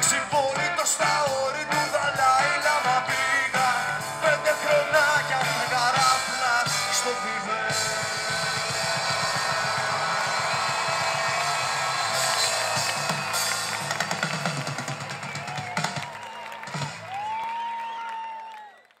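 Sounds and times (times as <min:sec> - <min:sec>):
live band playing: 0:00.0 - 0:17.2
drum hits: 0:07.7 - 0:16.1.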